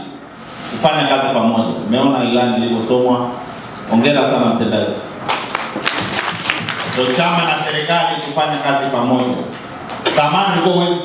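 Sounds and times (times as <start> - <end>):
audience applause: 5.5 - 8.3.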